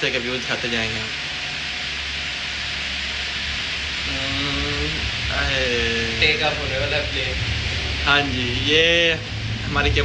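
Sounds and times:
cable car cabin hiss and hum: 0.0s - 10.0s.

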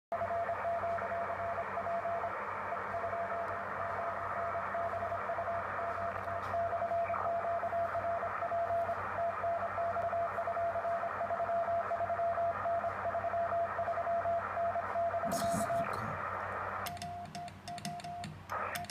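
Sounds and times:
radio band hiss: 15.1s - 16.8s
morse code tone: 16.9s - 18.9s.

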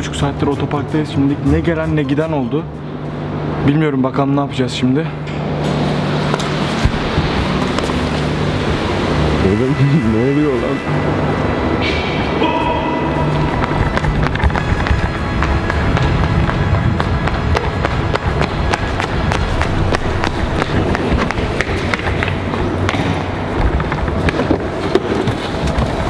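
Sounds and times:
running footsteps: 13.0s - 26.0s.

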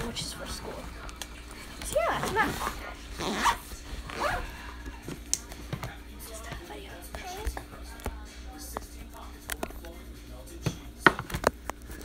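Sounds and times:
backpack zipper pulled: 2.4s - 4.5s.

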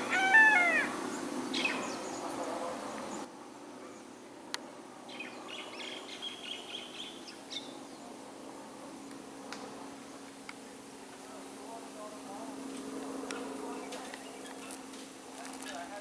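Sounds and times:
birds calling: 0.0s - 3.3s, 5.1s - 8.1s.

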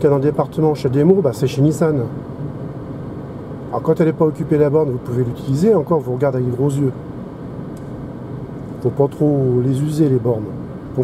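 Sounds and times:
road and tyre noise in car: 0.0s - 11.0s.

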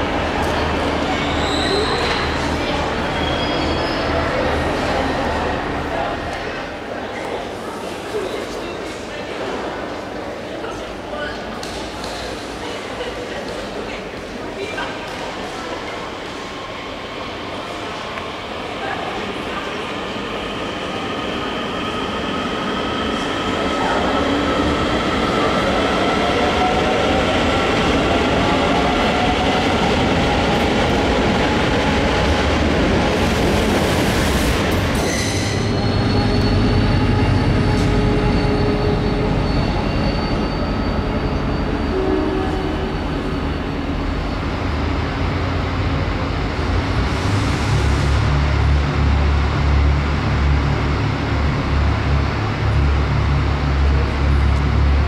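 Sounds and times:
train wheels squealing: 1.0s - 4.5s, 34.9s - 44.7s.

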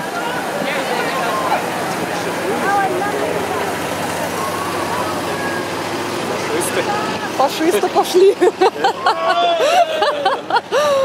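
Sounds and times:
truck engine driving past: 0.0s - 11.0s.

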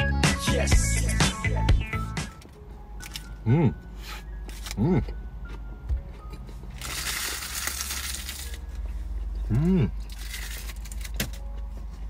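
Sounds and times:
paper wrapper crumpling: 6.8s - 8.7s, 10.1s - 11.2s.

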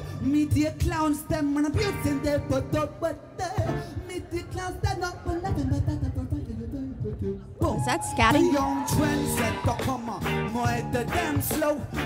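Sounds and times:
bass: 0.0s - 12.0s
guitar: 0.0s - 12.0s.

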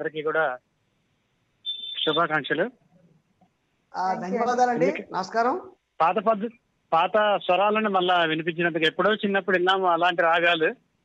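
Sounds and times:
person speaking: 4.0s - 10.8s.

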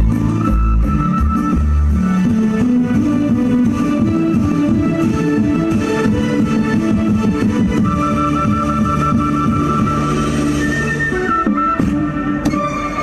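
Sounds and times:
dance music with held notes: 0.0s - 13.0s.

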